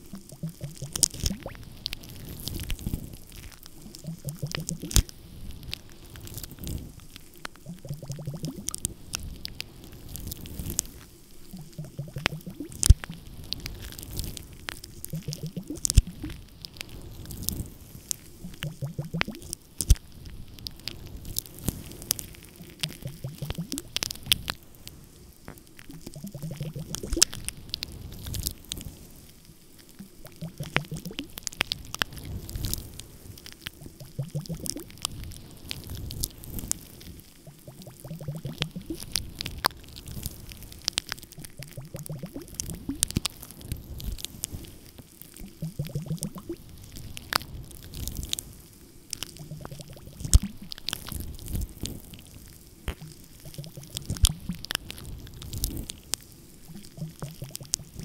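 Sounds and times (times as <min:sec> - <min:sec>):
crackle of small clicks: 0:00.0 - 0:58.0.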